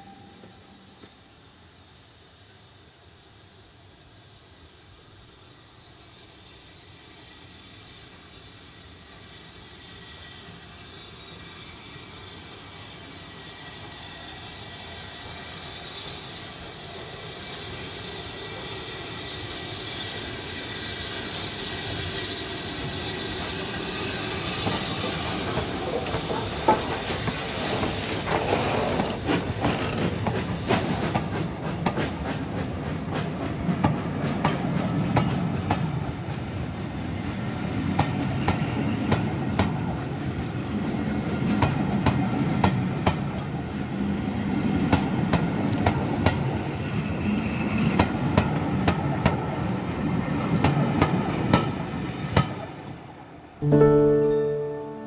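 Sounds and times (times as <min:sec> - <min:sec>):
steam hissing: 0:00.0 - 0:53.1
train wheels clicking on rail joints: 0:08.5 - 0:43.7, 0:44.6 - 0:52.8.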